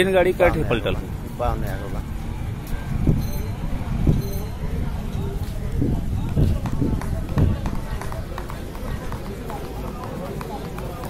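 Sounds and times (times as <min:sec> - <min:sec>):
people talking in background: 0:00.0 - 0:11.0
low rumble on microphone: 0:00.8 - 0:09.4
footsteps: 0:05.3 - 0:11.0.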